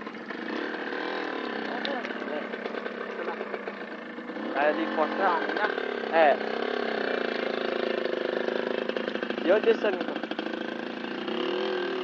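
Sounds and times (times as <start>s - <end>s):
small motorcycle engine under load: 0.0s - 12.0s.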